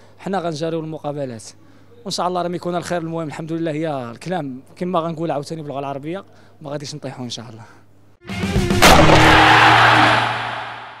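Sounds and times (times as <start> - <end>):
logo sting hit with airy wash: 8.8 - 11.0.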